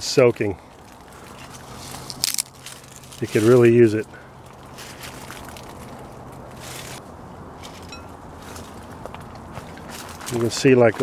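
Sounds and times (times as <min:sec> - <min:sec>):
low steady hum: 0:00.0 - 0:10.5
footsteps in dry leaves: 0:00.6 - 0:11.0.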